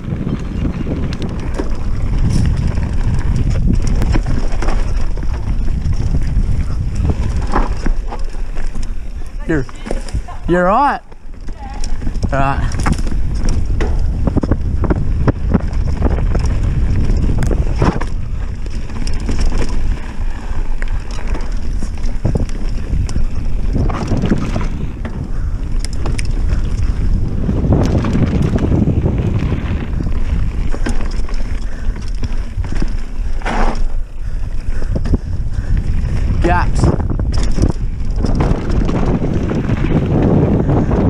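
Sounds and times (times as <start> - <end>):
tyre rumble on dirt: 0.0 - 8.8, 26.0 - 34.0, 35.8 - 41.0
bike knocks and rattles: 0.0 - 9.0, 11.0 - 41.0
wind on camera microphone: 0.0 - 41.0.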